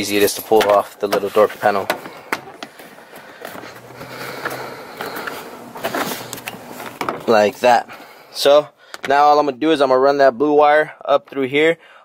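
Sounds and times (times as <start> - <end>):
plastic rubbing and rattling: 0.2 - 7.5.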